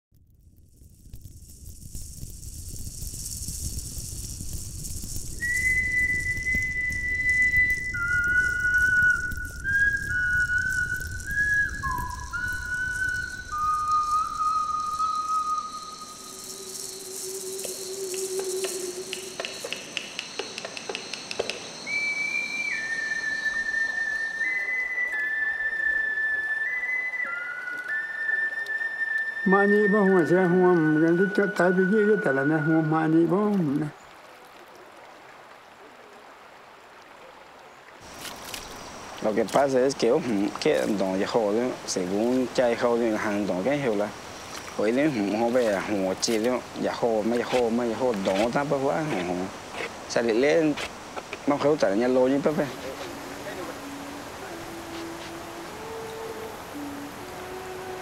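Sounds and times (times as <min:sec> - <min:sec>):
slow whistle melody: 0:04.8 - 0:33.6, 0:51.8 - 0:58.0.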